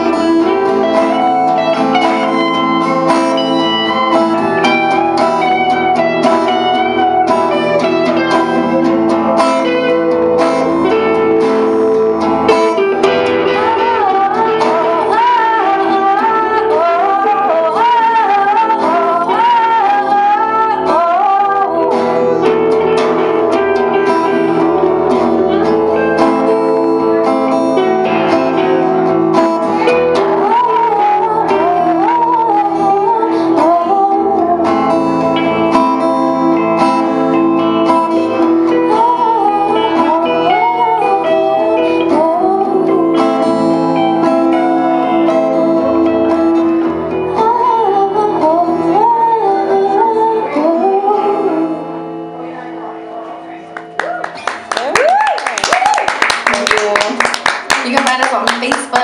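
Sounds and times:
acoustic guitar: 0.0 - 59.0
electric guitar: 0.0 - 59.0
high lead guitar bent notes: 0.0 - 59.0.

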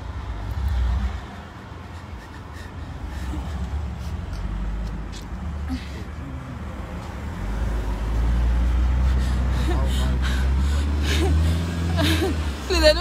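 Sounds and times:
vehicle rumble from inside: 0.0 - 13.0.

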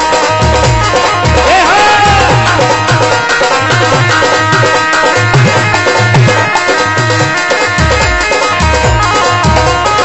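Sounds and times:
driving drum beat: 0.0 - 10.0
folk dance music: 0.0 - 10.0
gliding melody line: 0.6 - 10.0.

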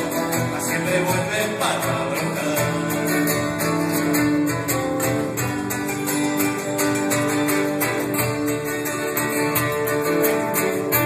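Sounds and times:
folk music on acoustic guitars: 0.0 - 11.0.

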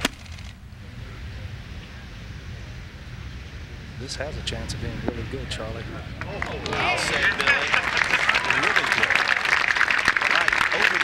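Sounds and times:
open-air background noise: 0.0 - 11.0.

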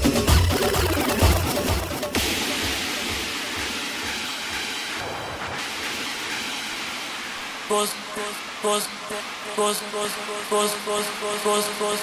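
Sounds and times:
thin dance music: 0.0 - 12.0
white-noise hiss: 2.1 - 12.0.

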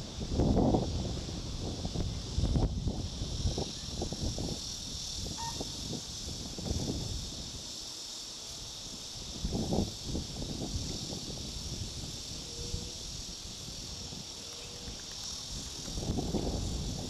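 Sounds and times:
wind buffeting microphone: 0.0 - 7.8, 8.7 - 17.0
high insect chorus: 0.0 - 17.0.

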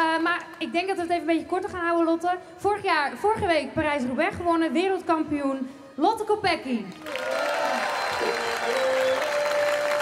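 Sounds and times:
crowd applauding: 6.9 - 10.0.

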